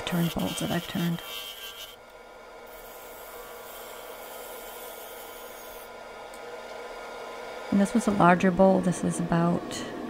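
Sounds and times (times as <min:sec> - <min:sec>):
wood lathe hissing: 0:00.0 - 0:06.0.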